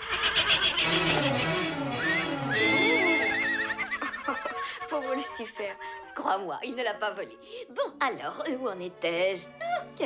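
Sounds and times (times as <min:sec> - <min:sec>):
horses whinnying with laughter: 0:00.0 - 0:05.0
orchestral film score: 0:00.8 - 0:10.0.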